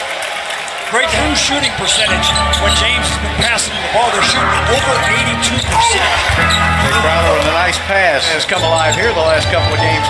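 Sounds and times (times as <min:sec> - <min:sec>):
arena music with low bass: 0:01.1 - 0:10.0
sneaker squeaks: 0:01.1 - 0:10.0.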